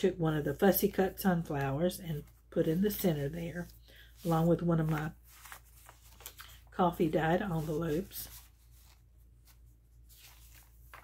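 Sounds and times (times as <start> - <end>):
paper pages rustling: 1.4 - 11.0.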